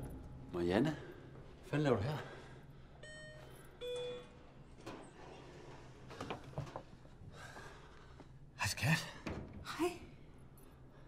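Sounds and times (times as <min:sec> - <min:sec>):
elevator chime beeps: 0:03.0 - 0:04.4.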